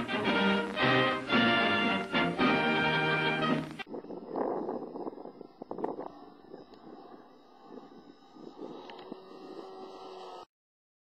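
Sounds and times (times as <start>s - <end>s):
wind noise on microphone: 0.0s - 10.2s.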